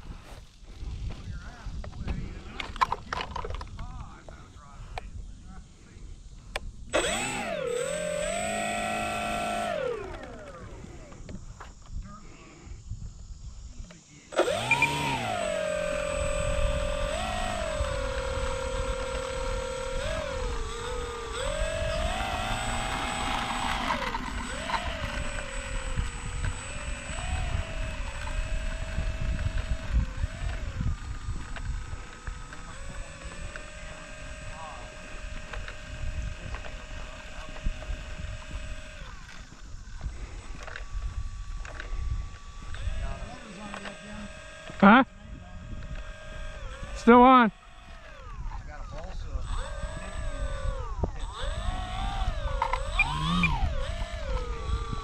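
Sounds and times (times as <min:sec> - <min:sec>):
electric motor and propeller whining: 0:00.0 - 0:55.0.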